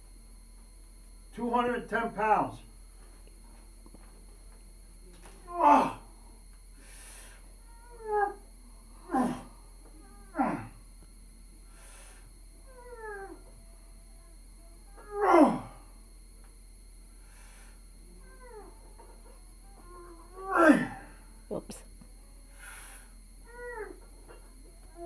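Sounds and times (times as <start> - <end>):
man groaning with effort: 5.5 - 6.1, 9.0 - 9.5, 10.3 - 10.8, 15.0 - 15.8, 20.4 - 21.2.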